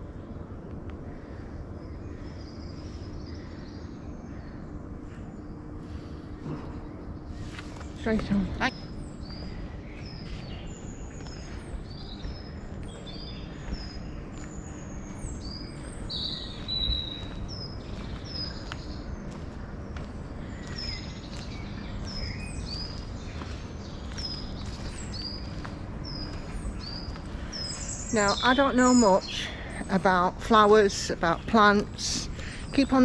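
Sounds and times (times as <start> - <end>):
birds singing: 0.0 - 33.0
footsteps on dirt path: 5.8 - 33.0.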